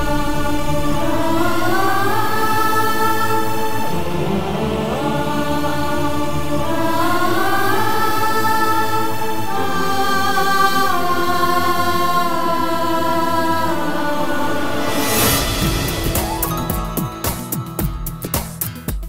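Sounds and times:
choir-like sustained notes: 0.0s - 18.2s.

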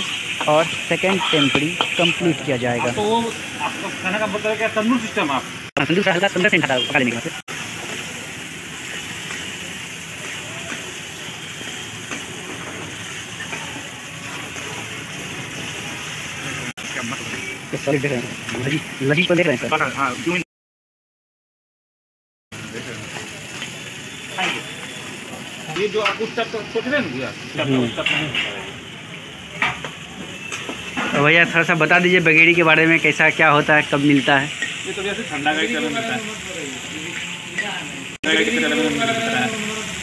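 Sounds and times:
meat sizzling in a pan: 0.0s - 20.4s, 22.6s - 40.0s.

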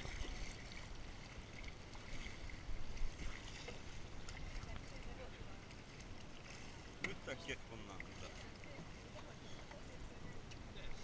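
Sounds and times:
water lapping and splashing: 0.0s - 11.0s.

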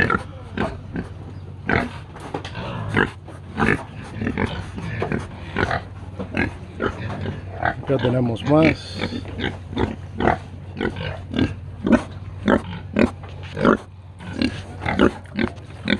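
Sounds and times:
pigs grunting: 0.0s - 15.9s.

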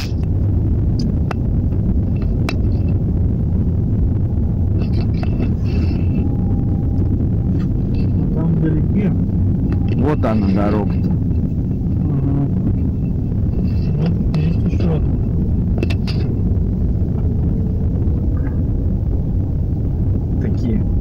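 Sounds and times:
car engine and road rumble: 0.0s - 21.0s.

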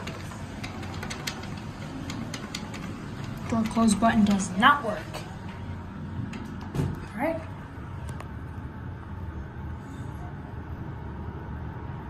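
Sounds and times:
elevator hum: 0.0s - 12.0s.

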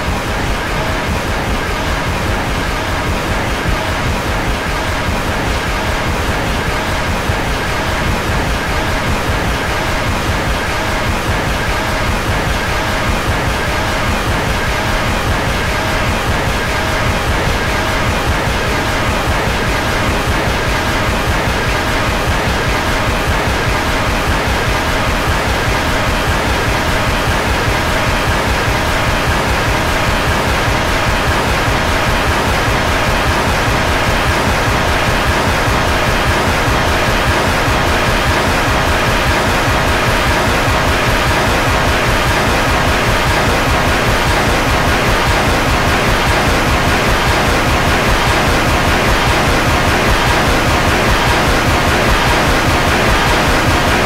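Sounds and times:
distorted noise wash: 0.0s - 54.0s.

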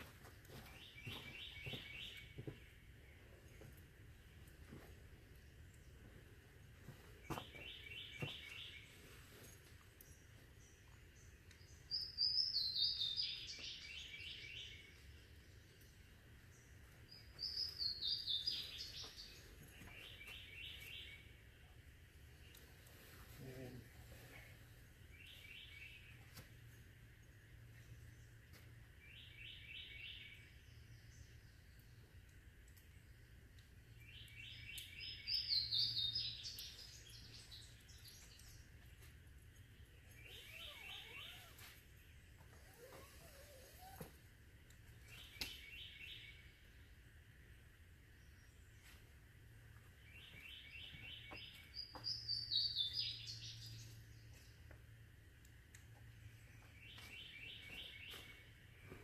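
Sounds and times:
faint low hum: 0.0s - 59.0s
bird singing: 0.5s - 4.5s, 7.1s - 22.7s, 24.4s - 32.2s, 32.8s - 44.2s, 44.8s - 47.1s, 49.6s - 54.9s, 55.9s - 59.0s.

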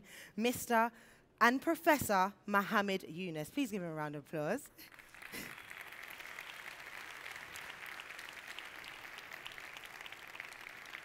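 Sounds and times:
audience applauding: 4.9s - 11.0s.

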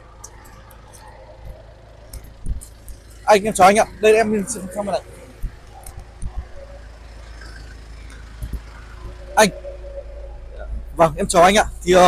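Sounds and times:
truck engine idling: 0.0s - 12.0s
person speaking: 3.3s - 5.4s.

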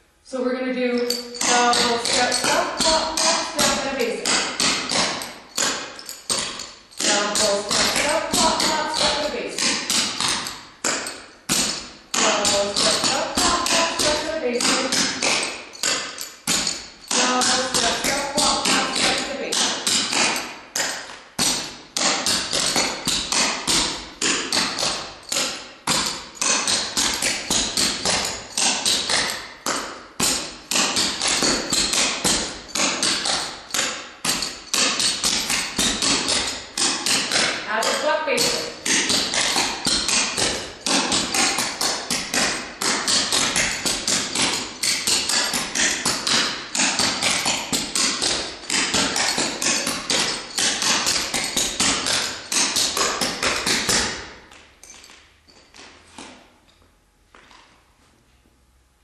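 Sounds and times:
tap shoes on hardwood floor: 1.0s - 56.4s.

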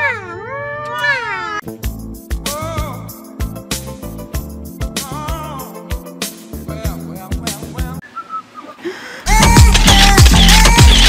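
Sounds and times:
high wavering yowling wail: 0.0s - 1.6s
music with heavy drum beat: 1.7s - 8.0s, 9.3s - 11.0s.

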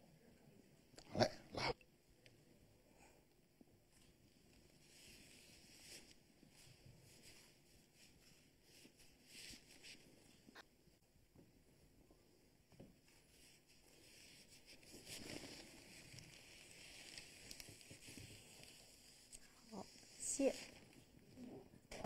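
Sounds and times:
faint rustling: 3.9s - 10.6s, 11.4s - 22.0s.

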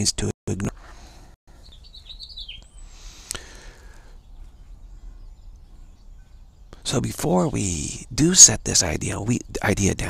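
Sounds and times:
high bird chirps: 1.5s - 10.0s.

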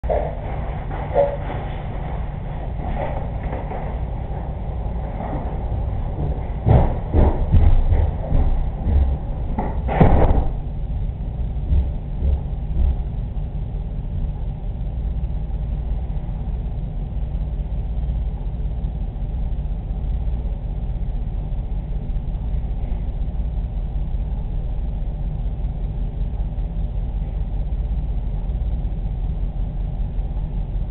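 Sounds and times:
faint hum: 0.0s - 30.9s
steady low rumble: 0.0s - 30.9s
dull thumps: 5.1s - 13.2s.

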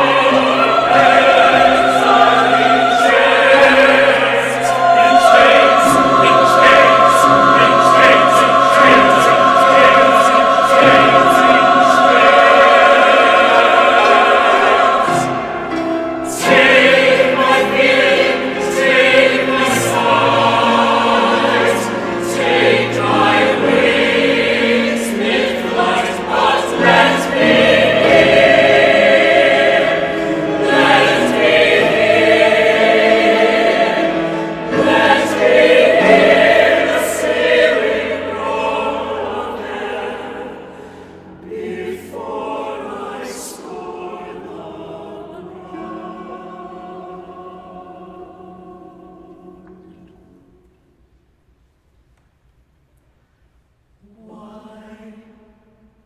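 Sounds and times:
mixed choir singing: 0.0s - 50.5s, 54.0s - 56.0s.

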